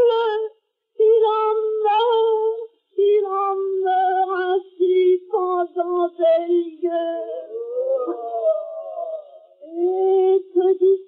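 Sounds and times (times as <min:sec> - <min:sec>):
wailing human voice: 0:07.2 - 0:10.4.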